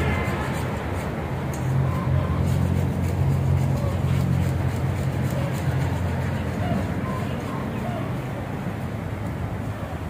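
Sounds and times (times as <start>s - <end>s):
faint voices: 0.0s - 10.0s
low engine rumble: 0.0s - 10.0s.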